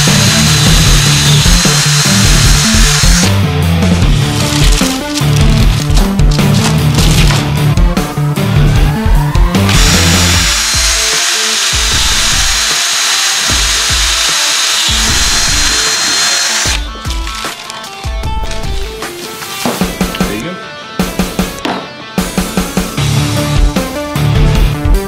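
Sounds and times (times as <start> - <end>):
power drill boring through bone: 0.0 - 3.4, 9.6 - 16.9
background music: 0.0 - 25.0.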